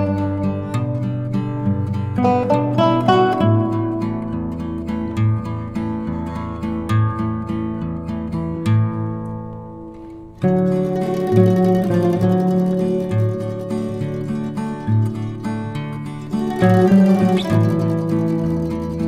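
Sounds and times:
plucked string music over held bass: 0.0s - 19.0s.

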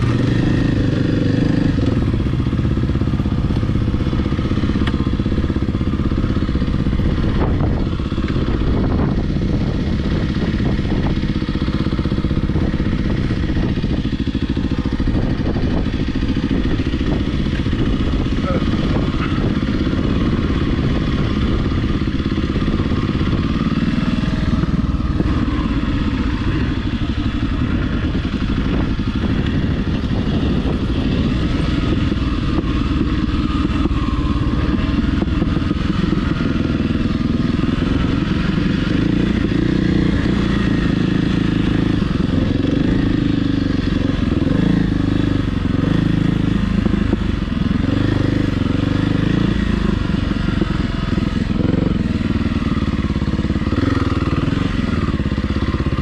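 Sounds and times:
dirt bike engine revving: 0.0s - 56.0s.

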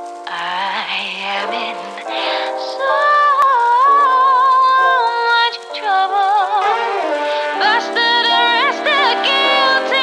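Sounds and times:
woman singing: 0.3s - 10.0s.

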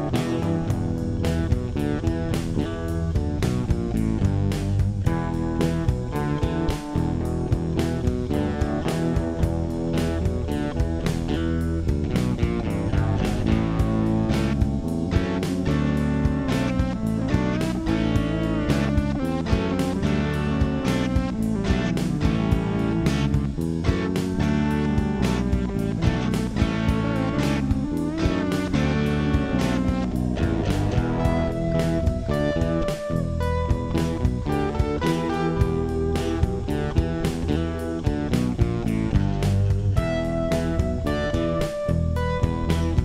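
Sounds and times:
guitar music with steady beat: 0.0s - 43.0s.

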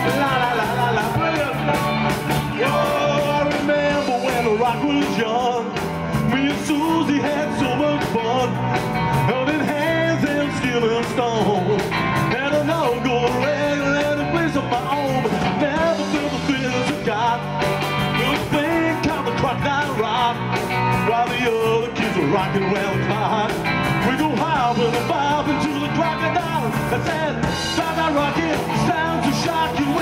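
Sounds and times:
bass guitar: 0.0s - 30.0s
drum kit: 0.0s - 30.0s
electric guitar: 0.0s - 30.0s
keyboard: 0.0s - 30.0s.

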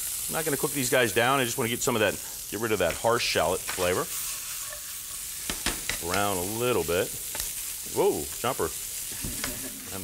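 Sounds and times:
shallots sizzling in frying pan: 0.0s - 10.0s.

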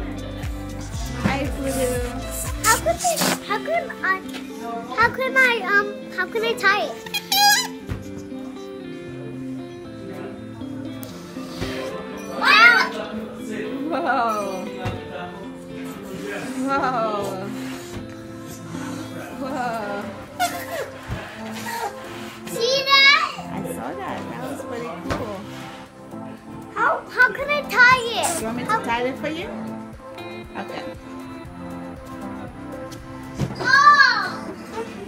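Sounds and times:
background music: 0.0s - 35.0s
balloon neck squeaking: 2.6s - 3.7s, 7.0s - 8.2s
children's voices at play: 2.6s - 7.8s, 12.1s - 13.2s, 21.5s - 23.6s, 26.7s - 28.9s, 33.5s - 35.0s
child squealing: 7.1s - 7.8s, 12.3s - 12.9s, 33.6s - 34.4s.

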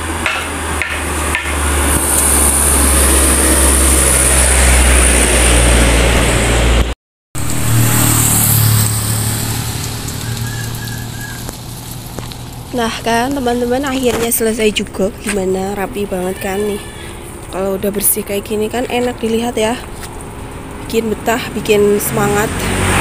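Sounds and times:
truck driving past: 0.0s - 23.0s.

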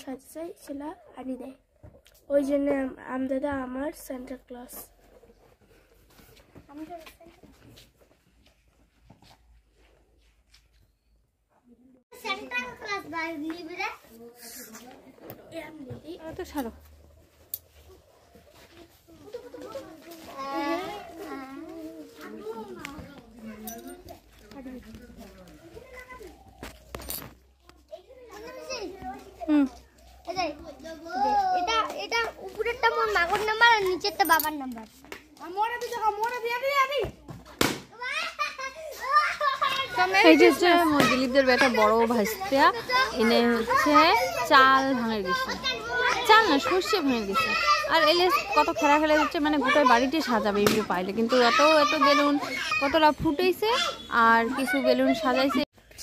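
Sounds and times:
children calling and chattering: 0.0s - 56.0s.

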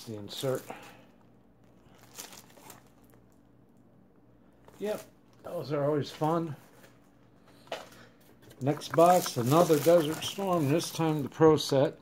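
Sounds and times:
packaging crinkling: 0.2s - 3.8s, 7.8s - 11.8s.

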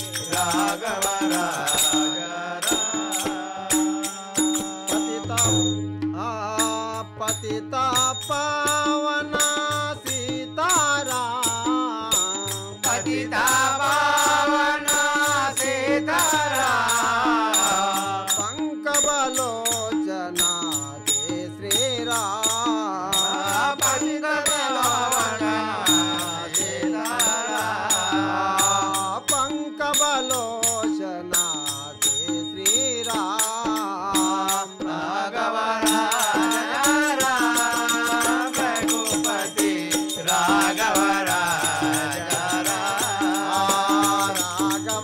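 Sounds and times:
hand cymbals ringing: 0.0s - 35.1s, 35.8s - 45.0s
harmonium drone: 0.0s - 45.0s
male voices singing devotional song: 0.0s - 45.0s.

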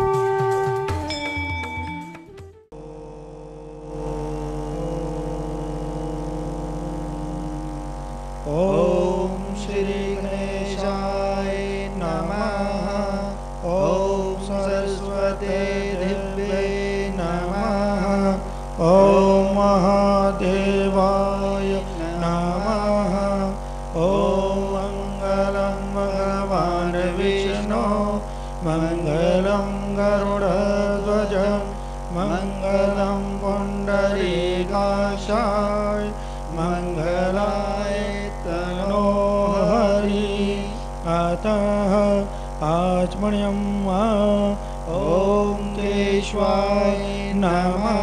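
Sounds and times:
person singing chant: 2.7s - 48.0s
sustained drone: 2.7s - 48.0s.

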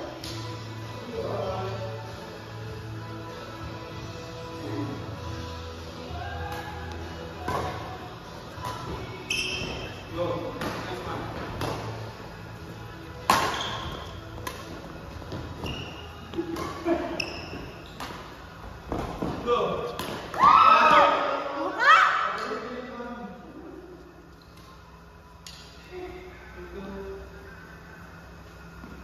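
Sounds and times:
rackets hitting shuttlecock: 7.4s - 7.9s, 8.5s - 9.9s, 10.5s - 12.0s, 13.2s - 21.1s
short high squeaks: 9.2s - 10.0s, 13.5s - 14.2s, 15.6s - 16.2s.

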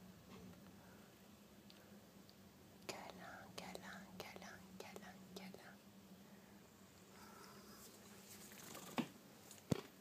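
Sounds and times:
faint steady hum: 0.0s - 10.0s
faint whispering: 2.9s - 5.8s.

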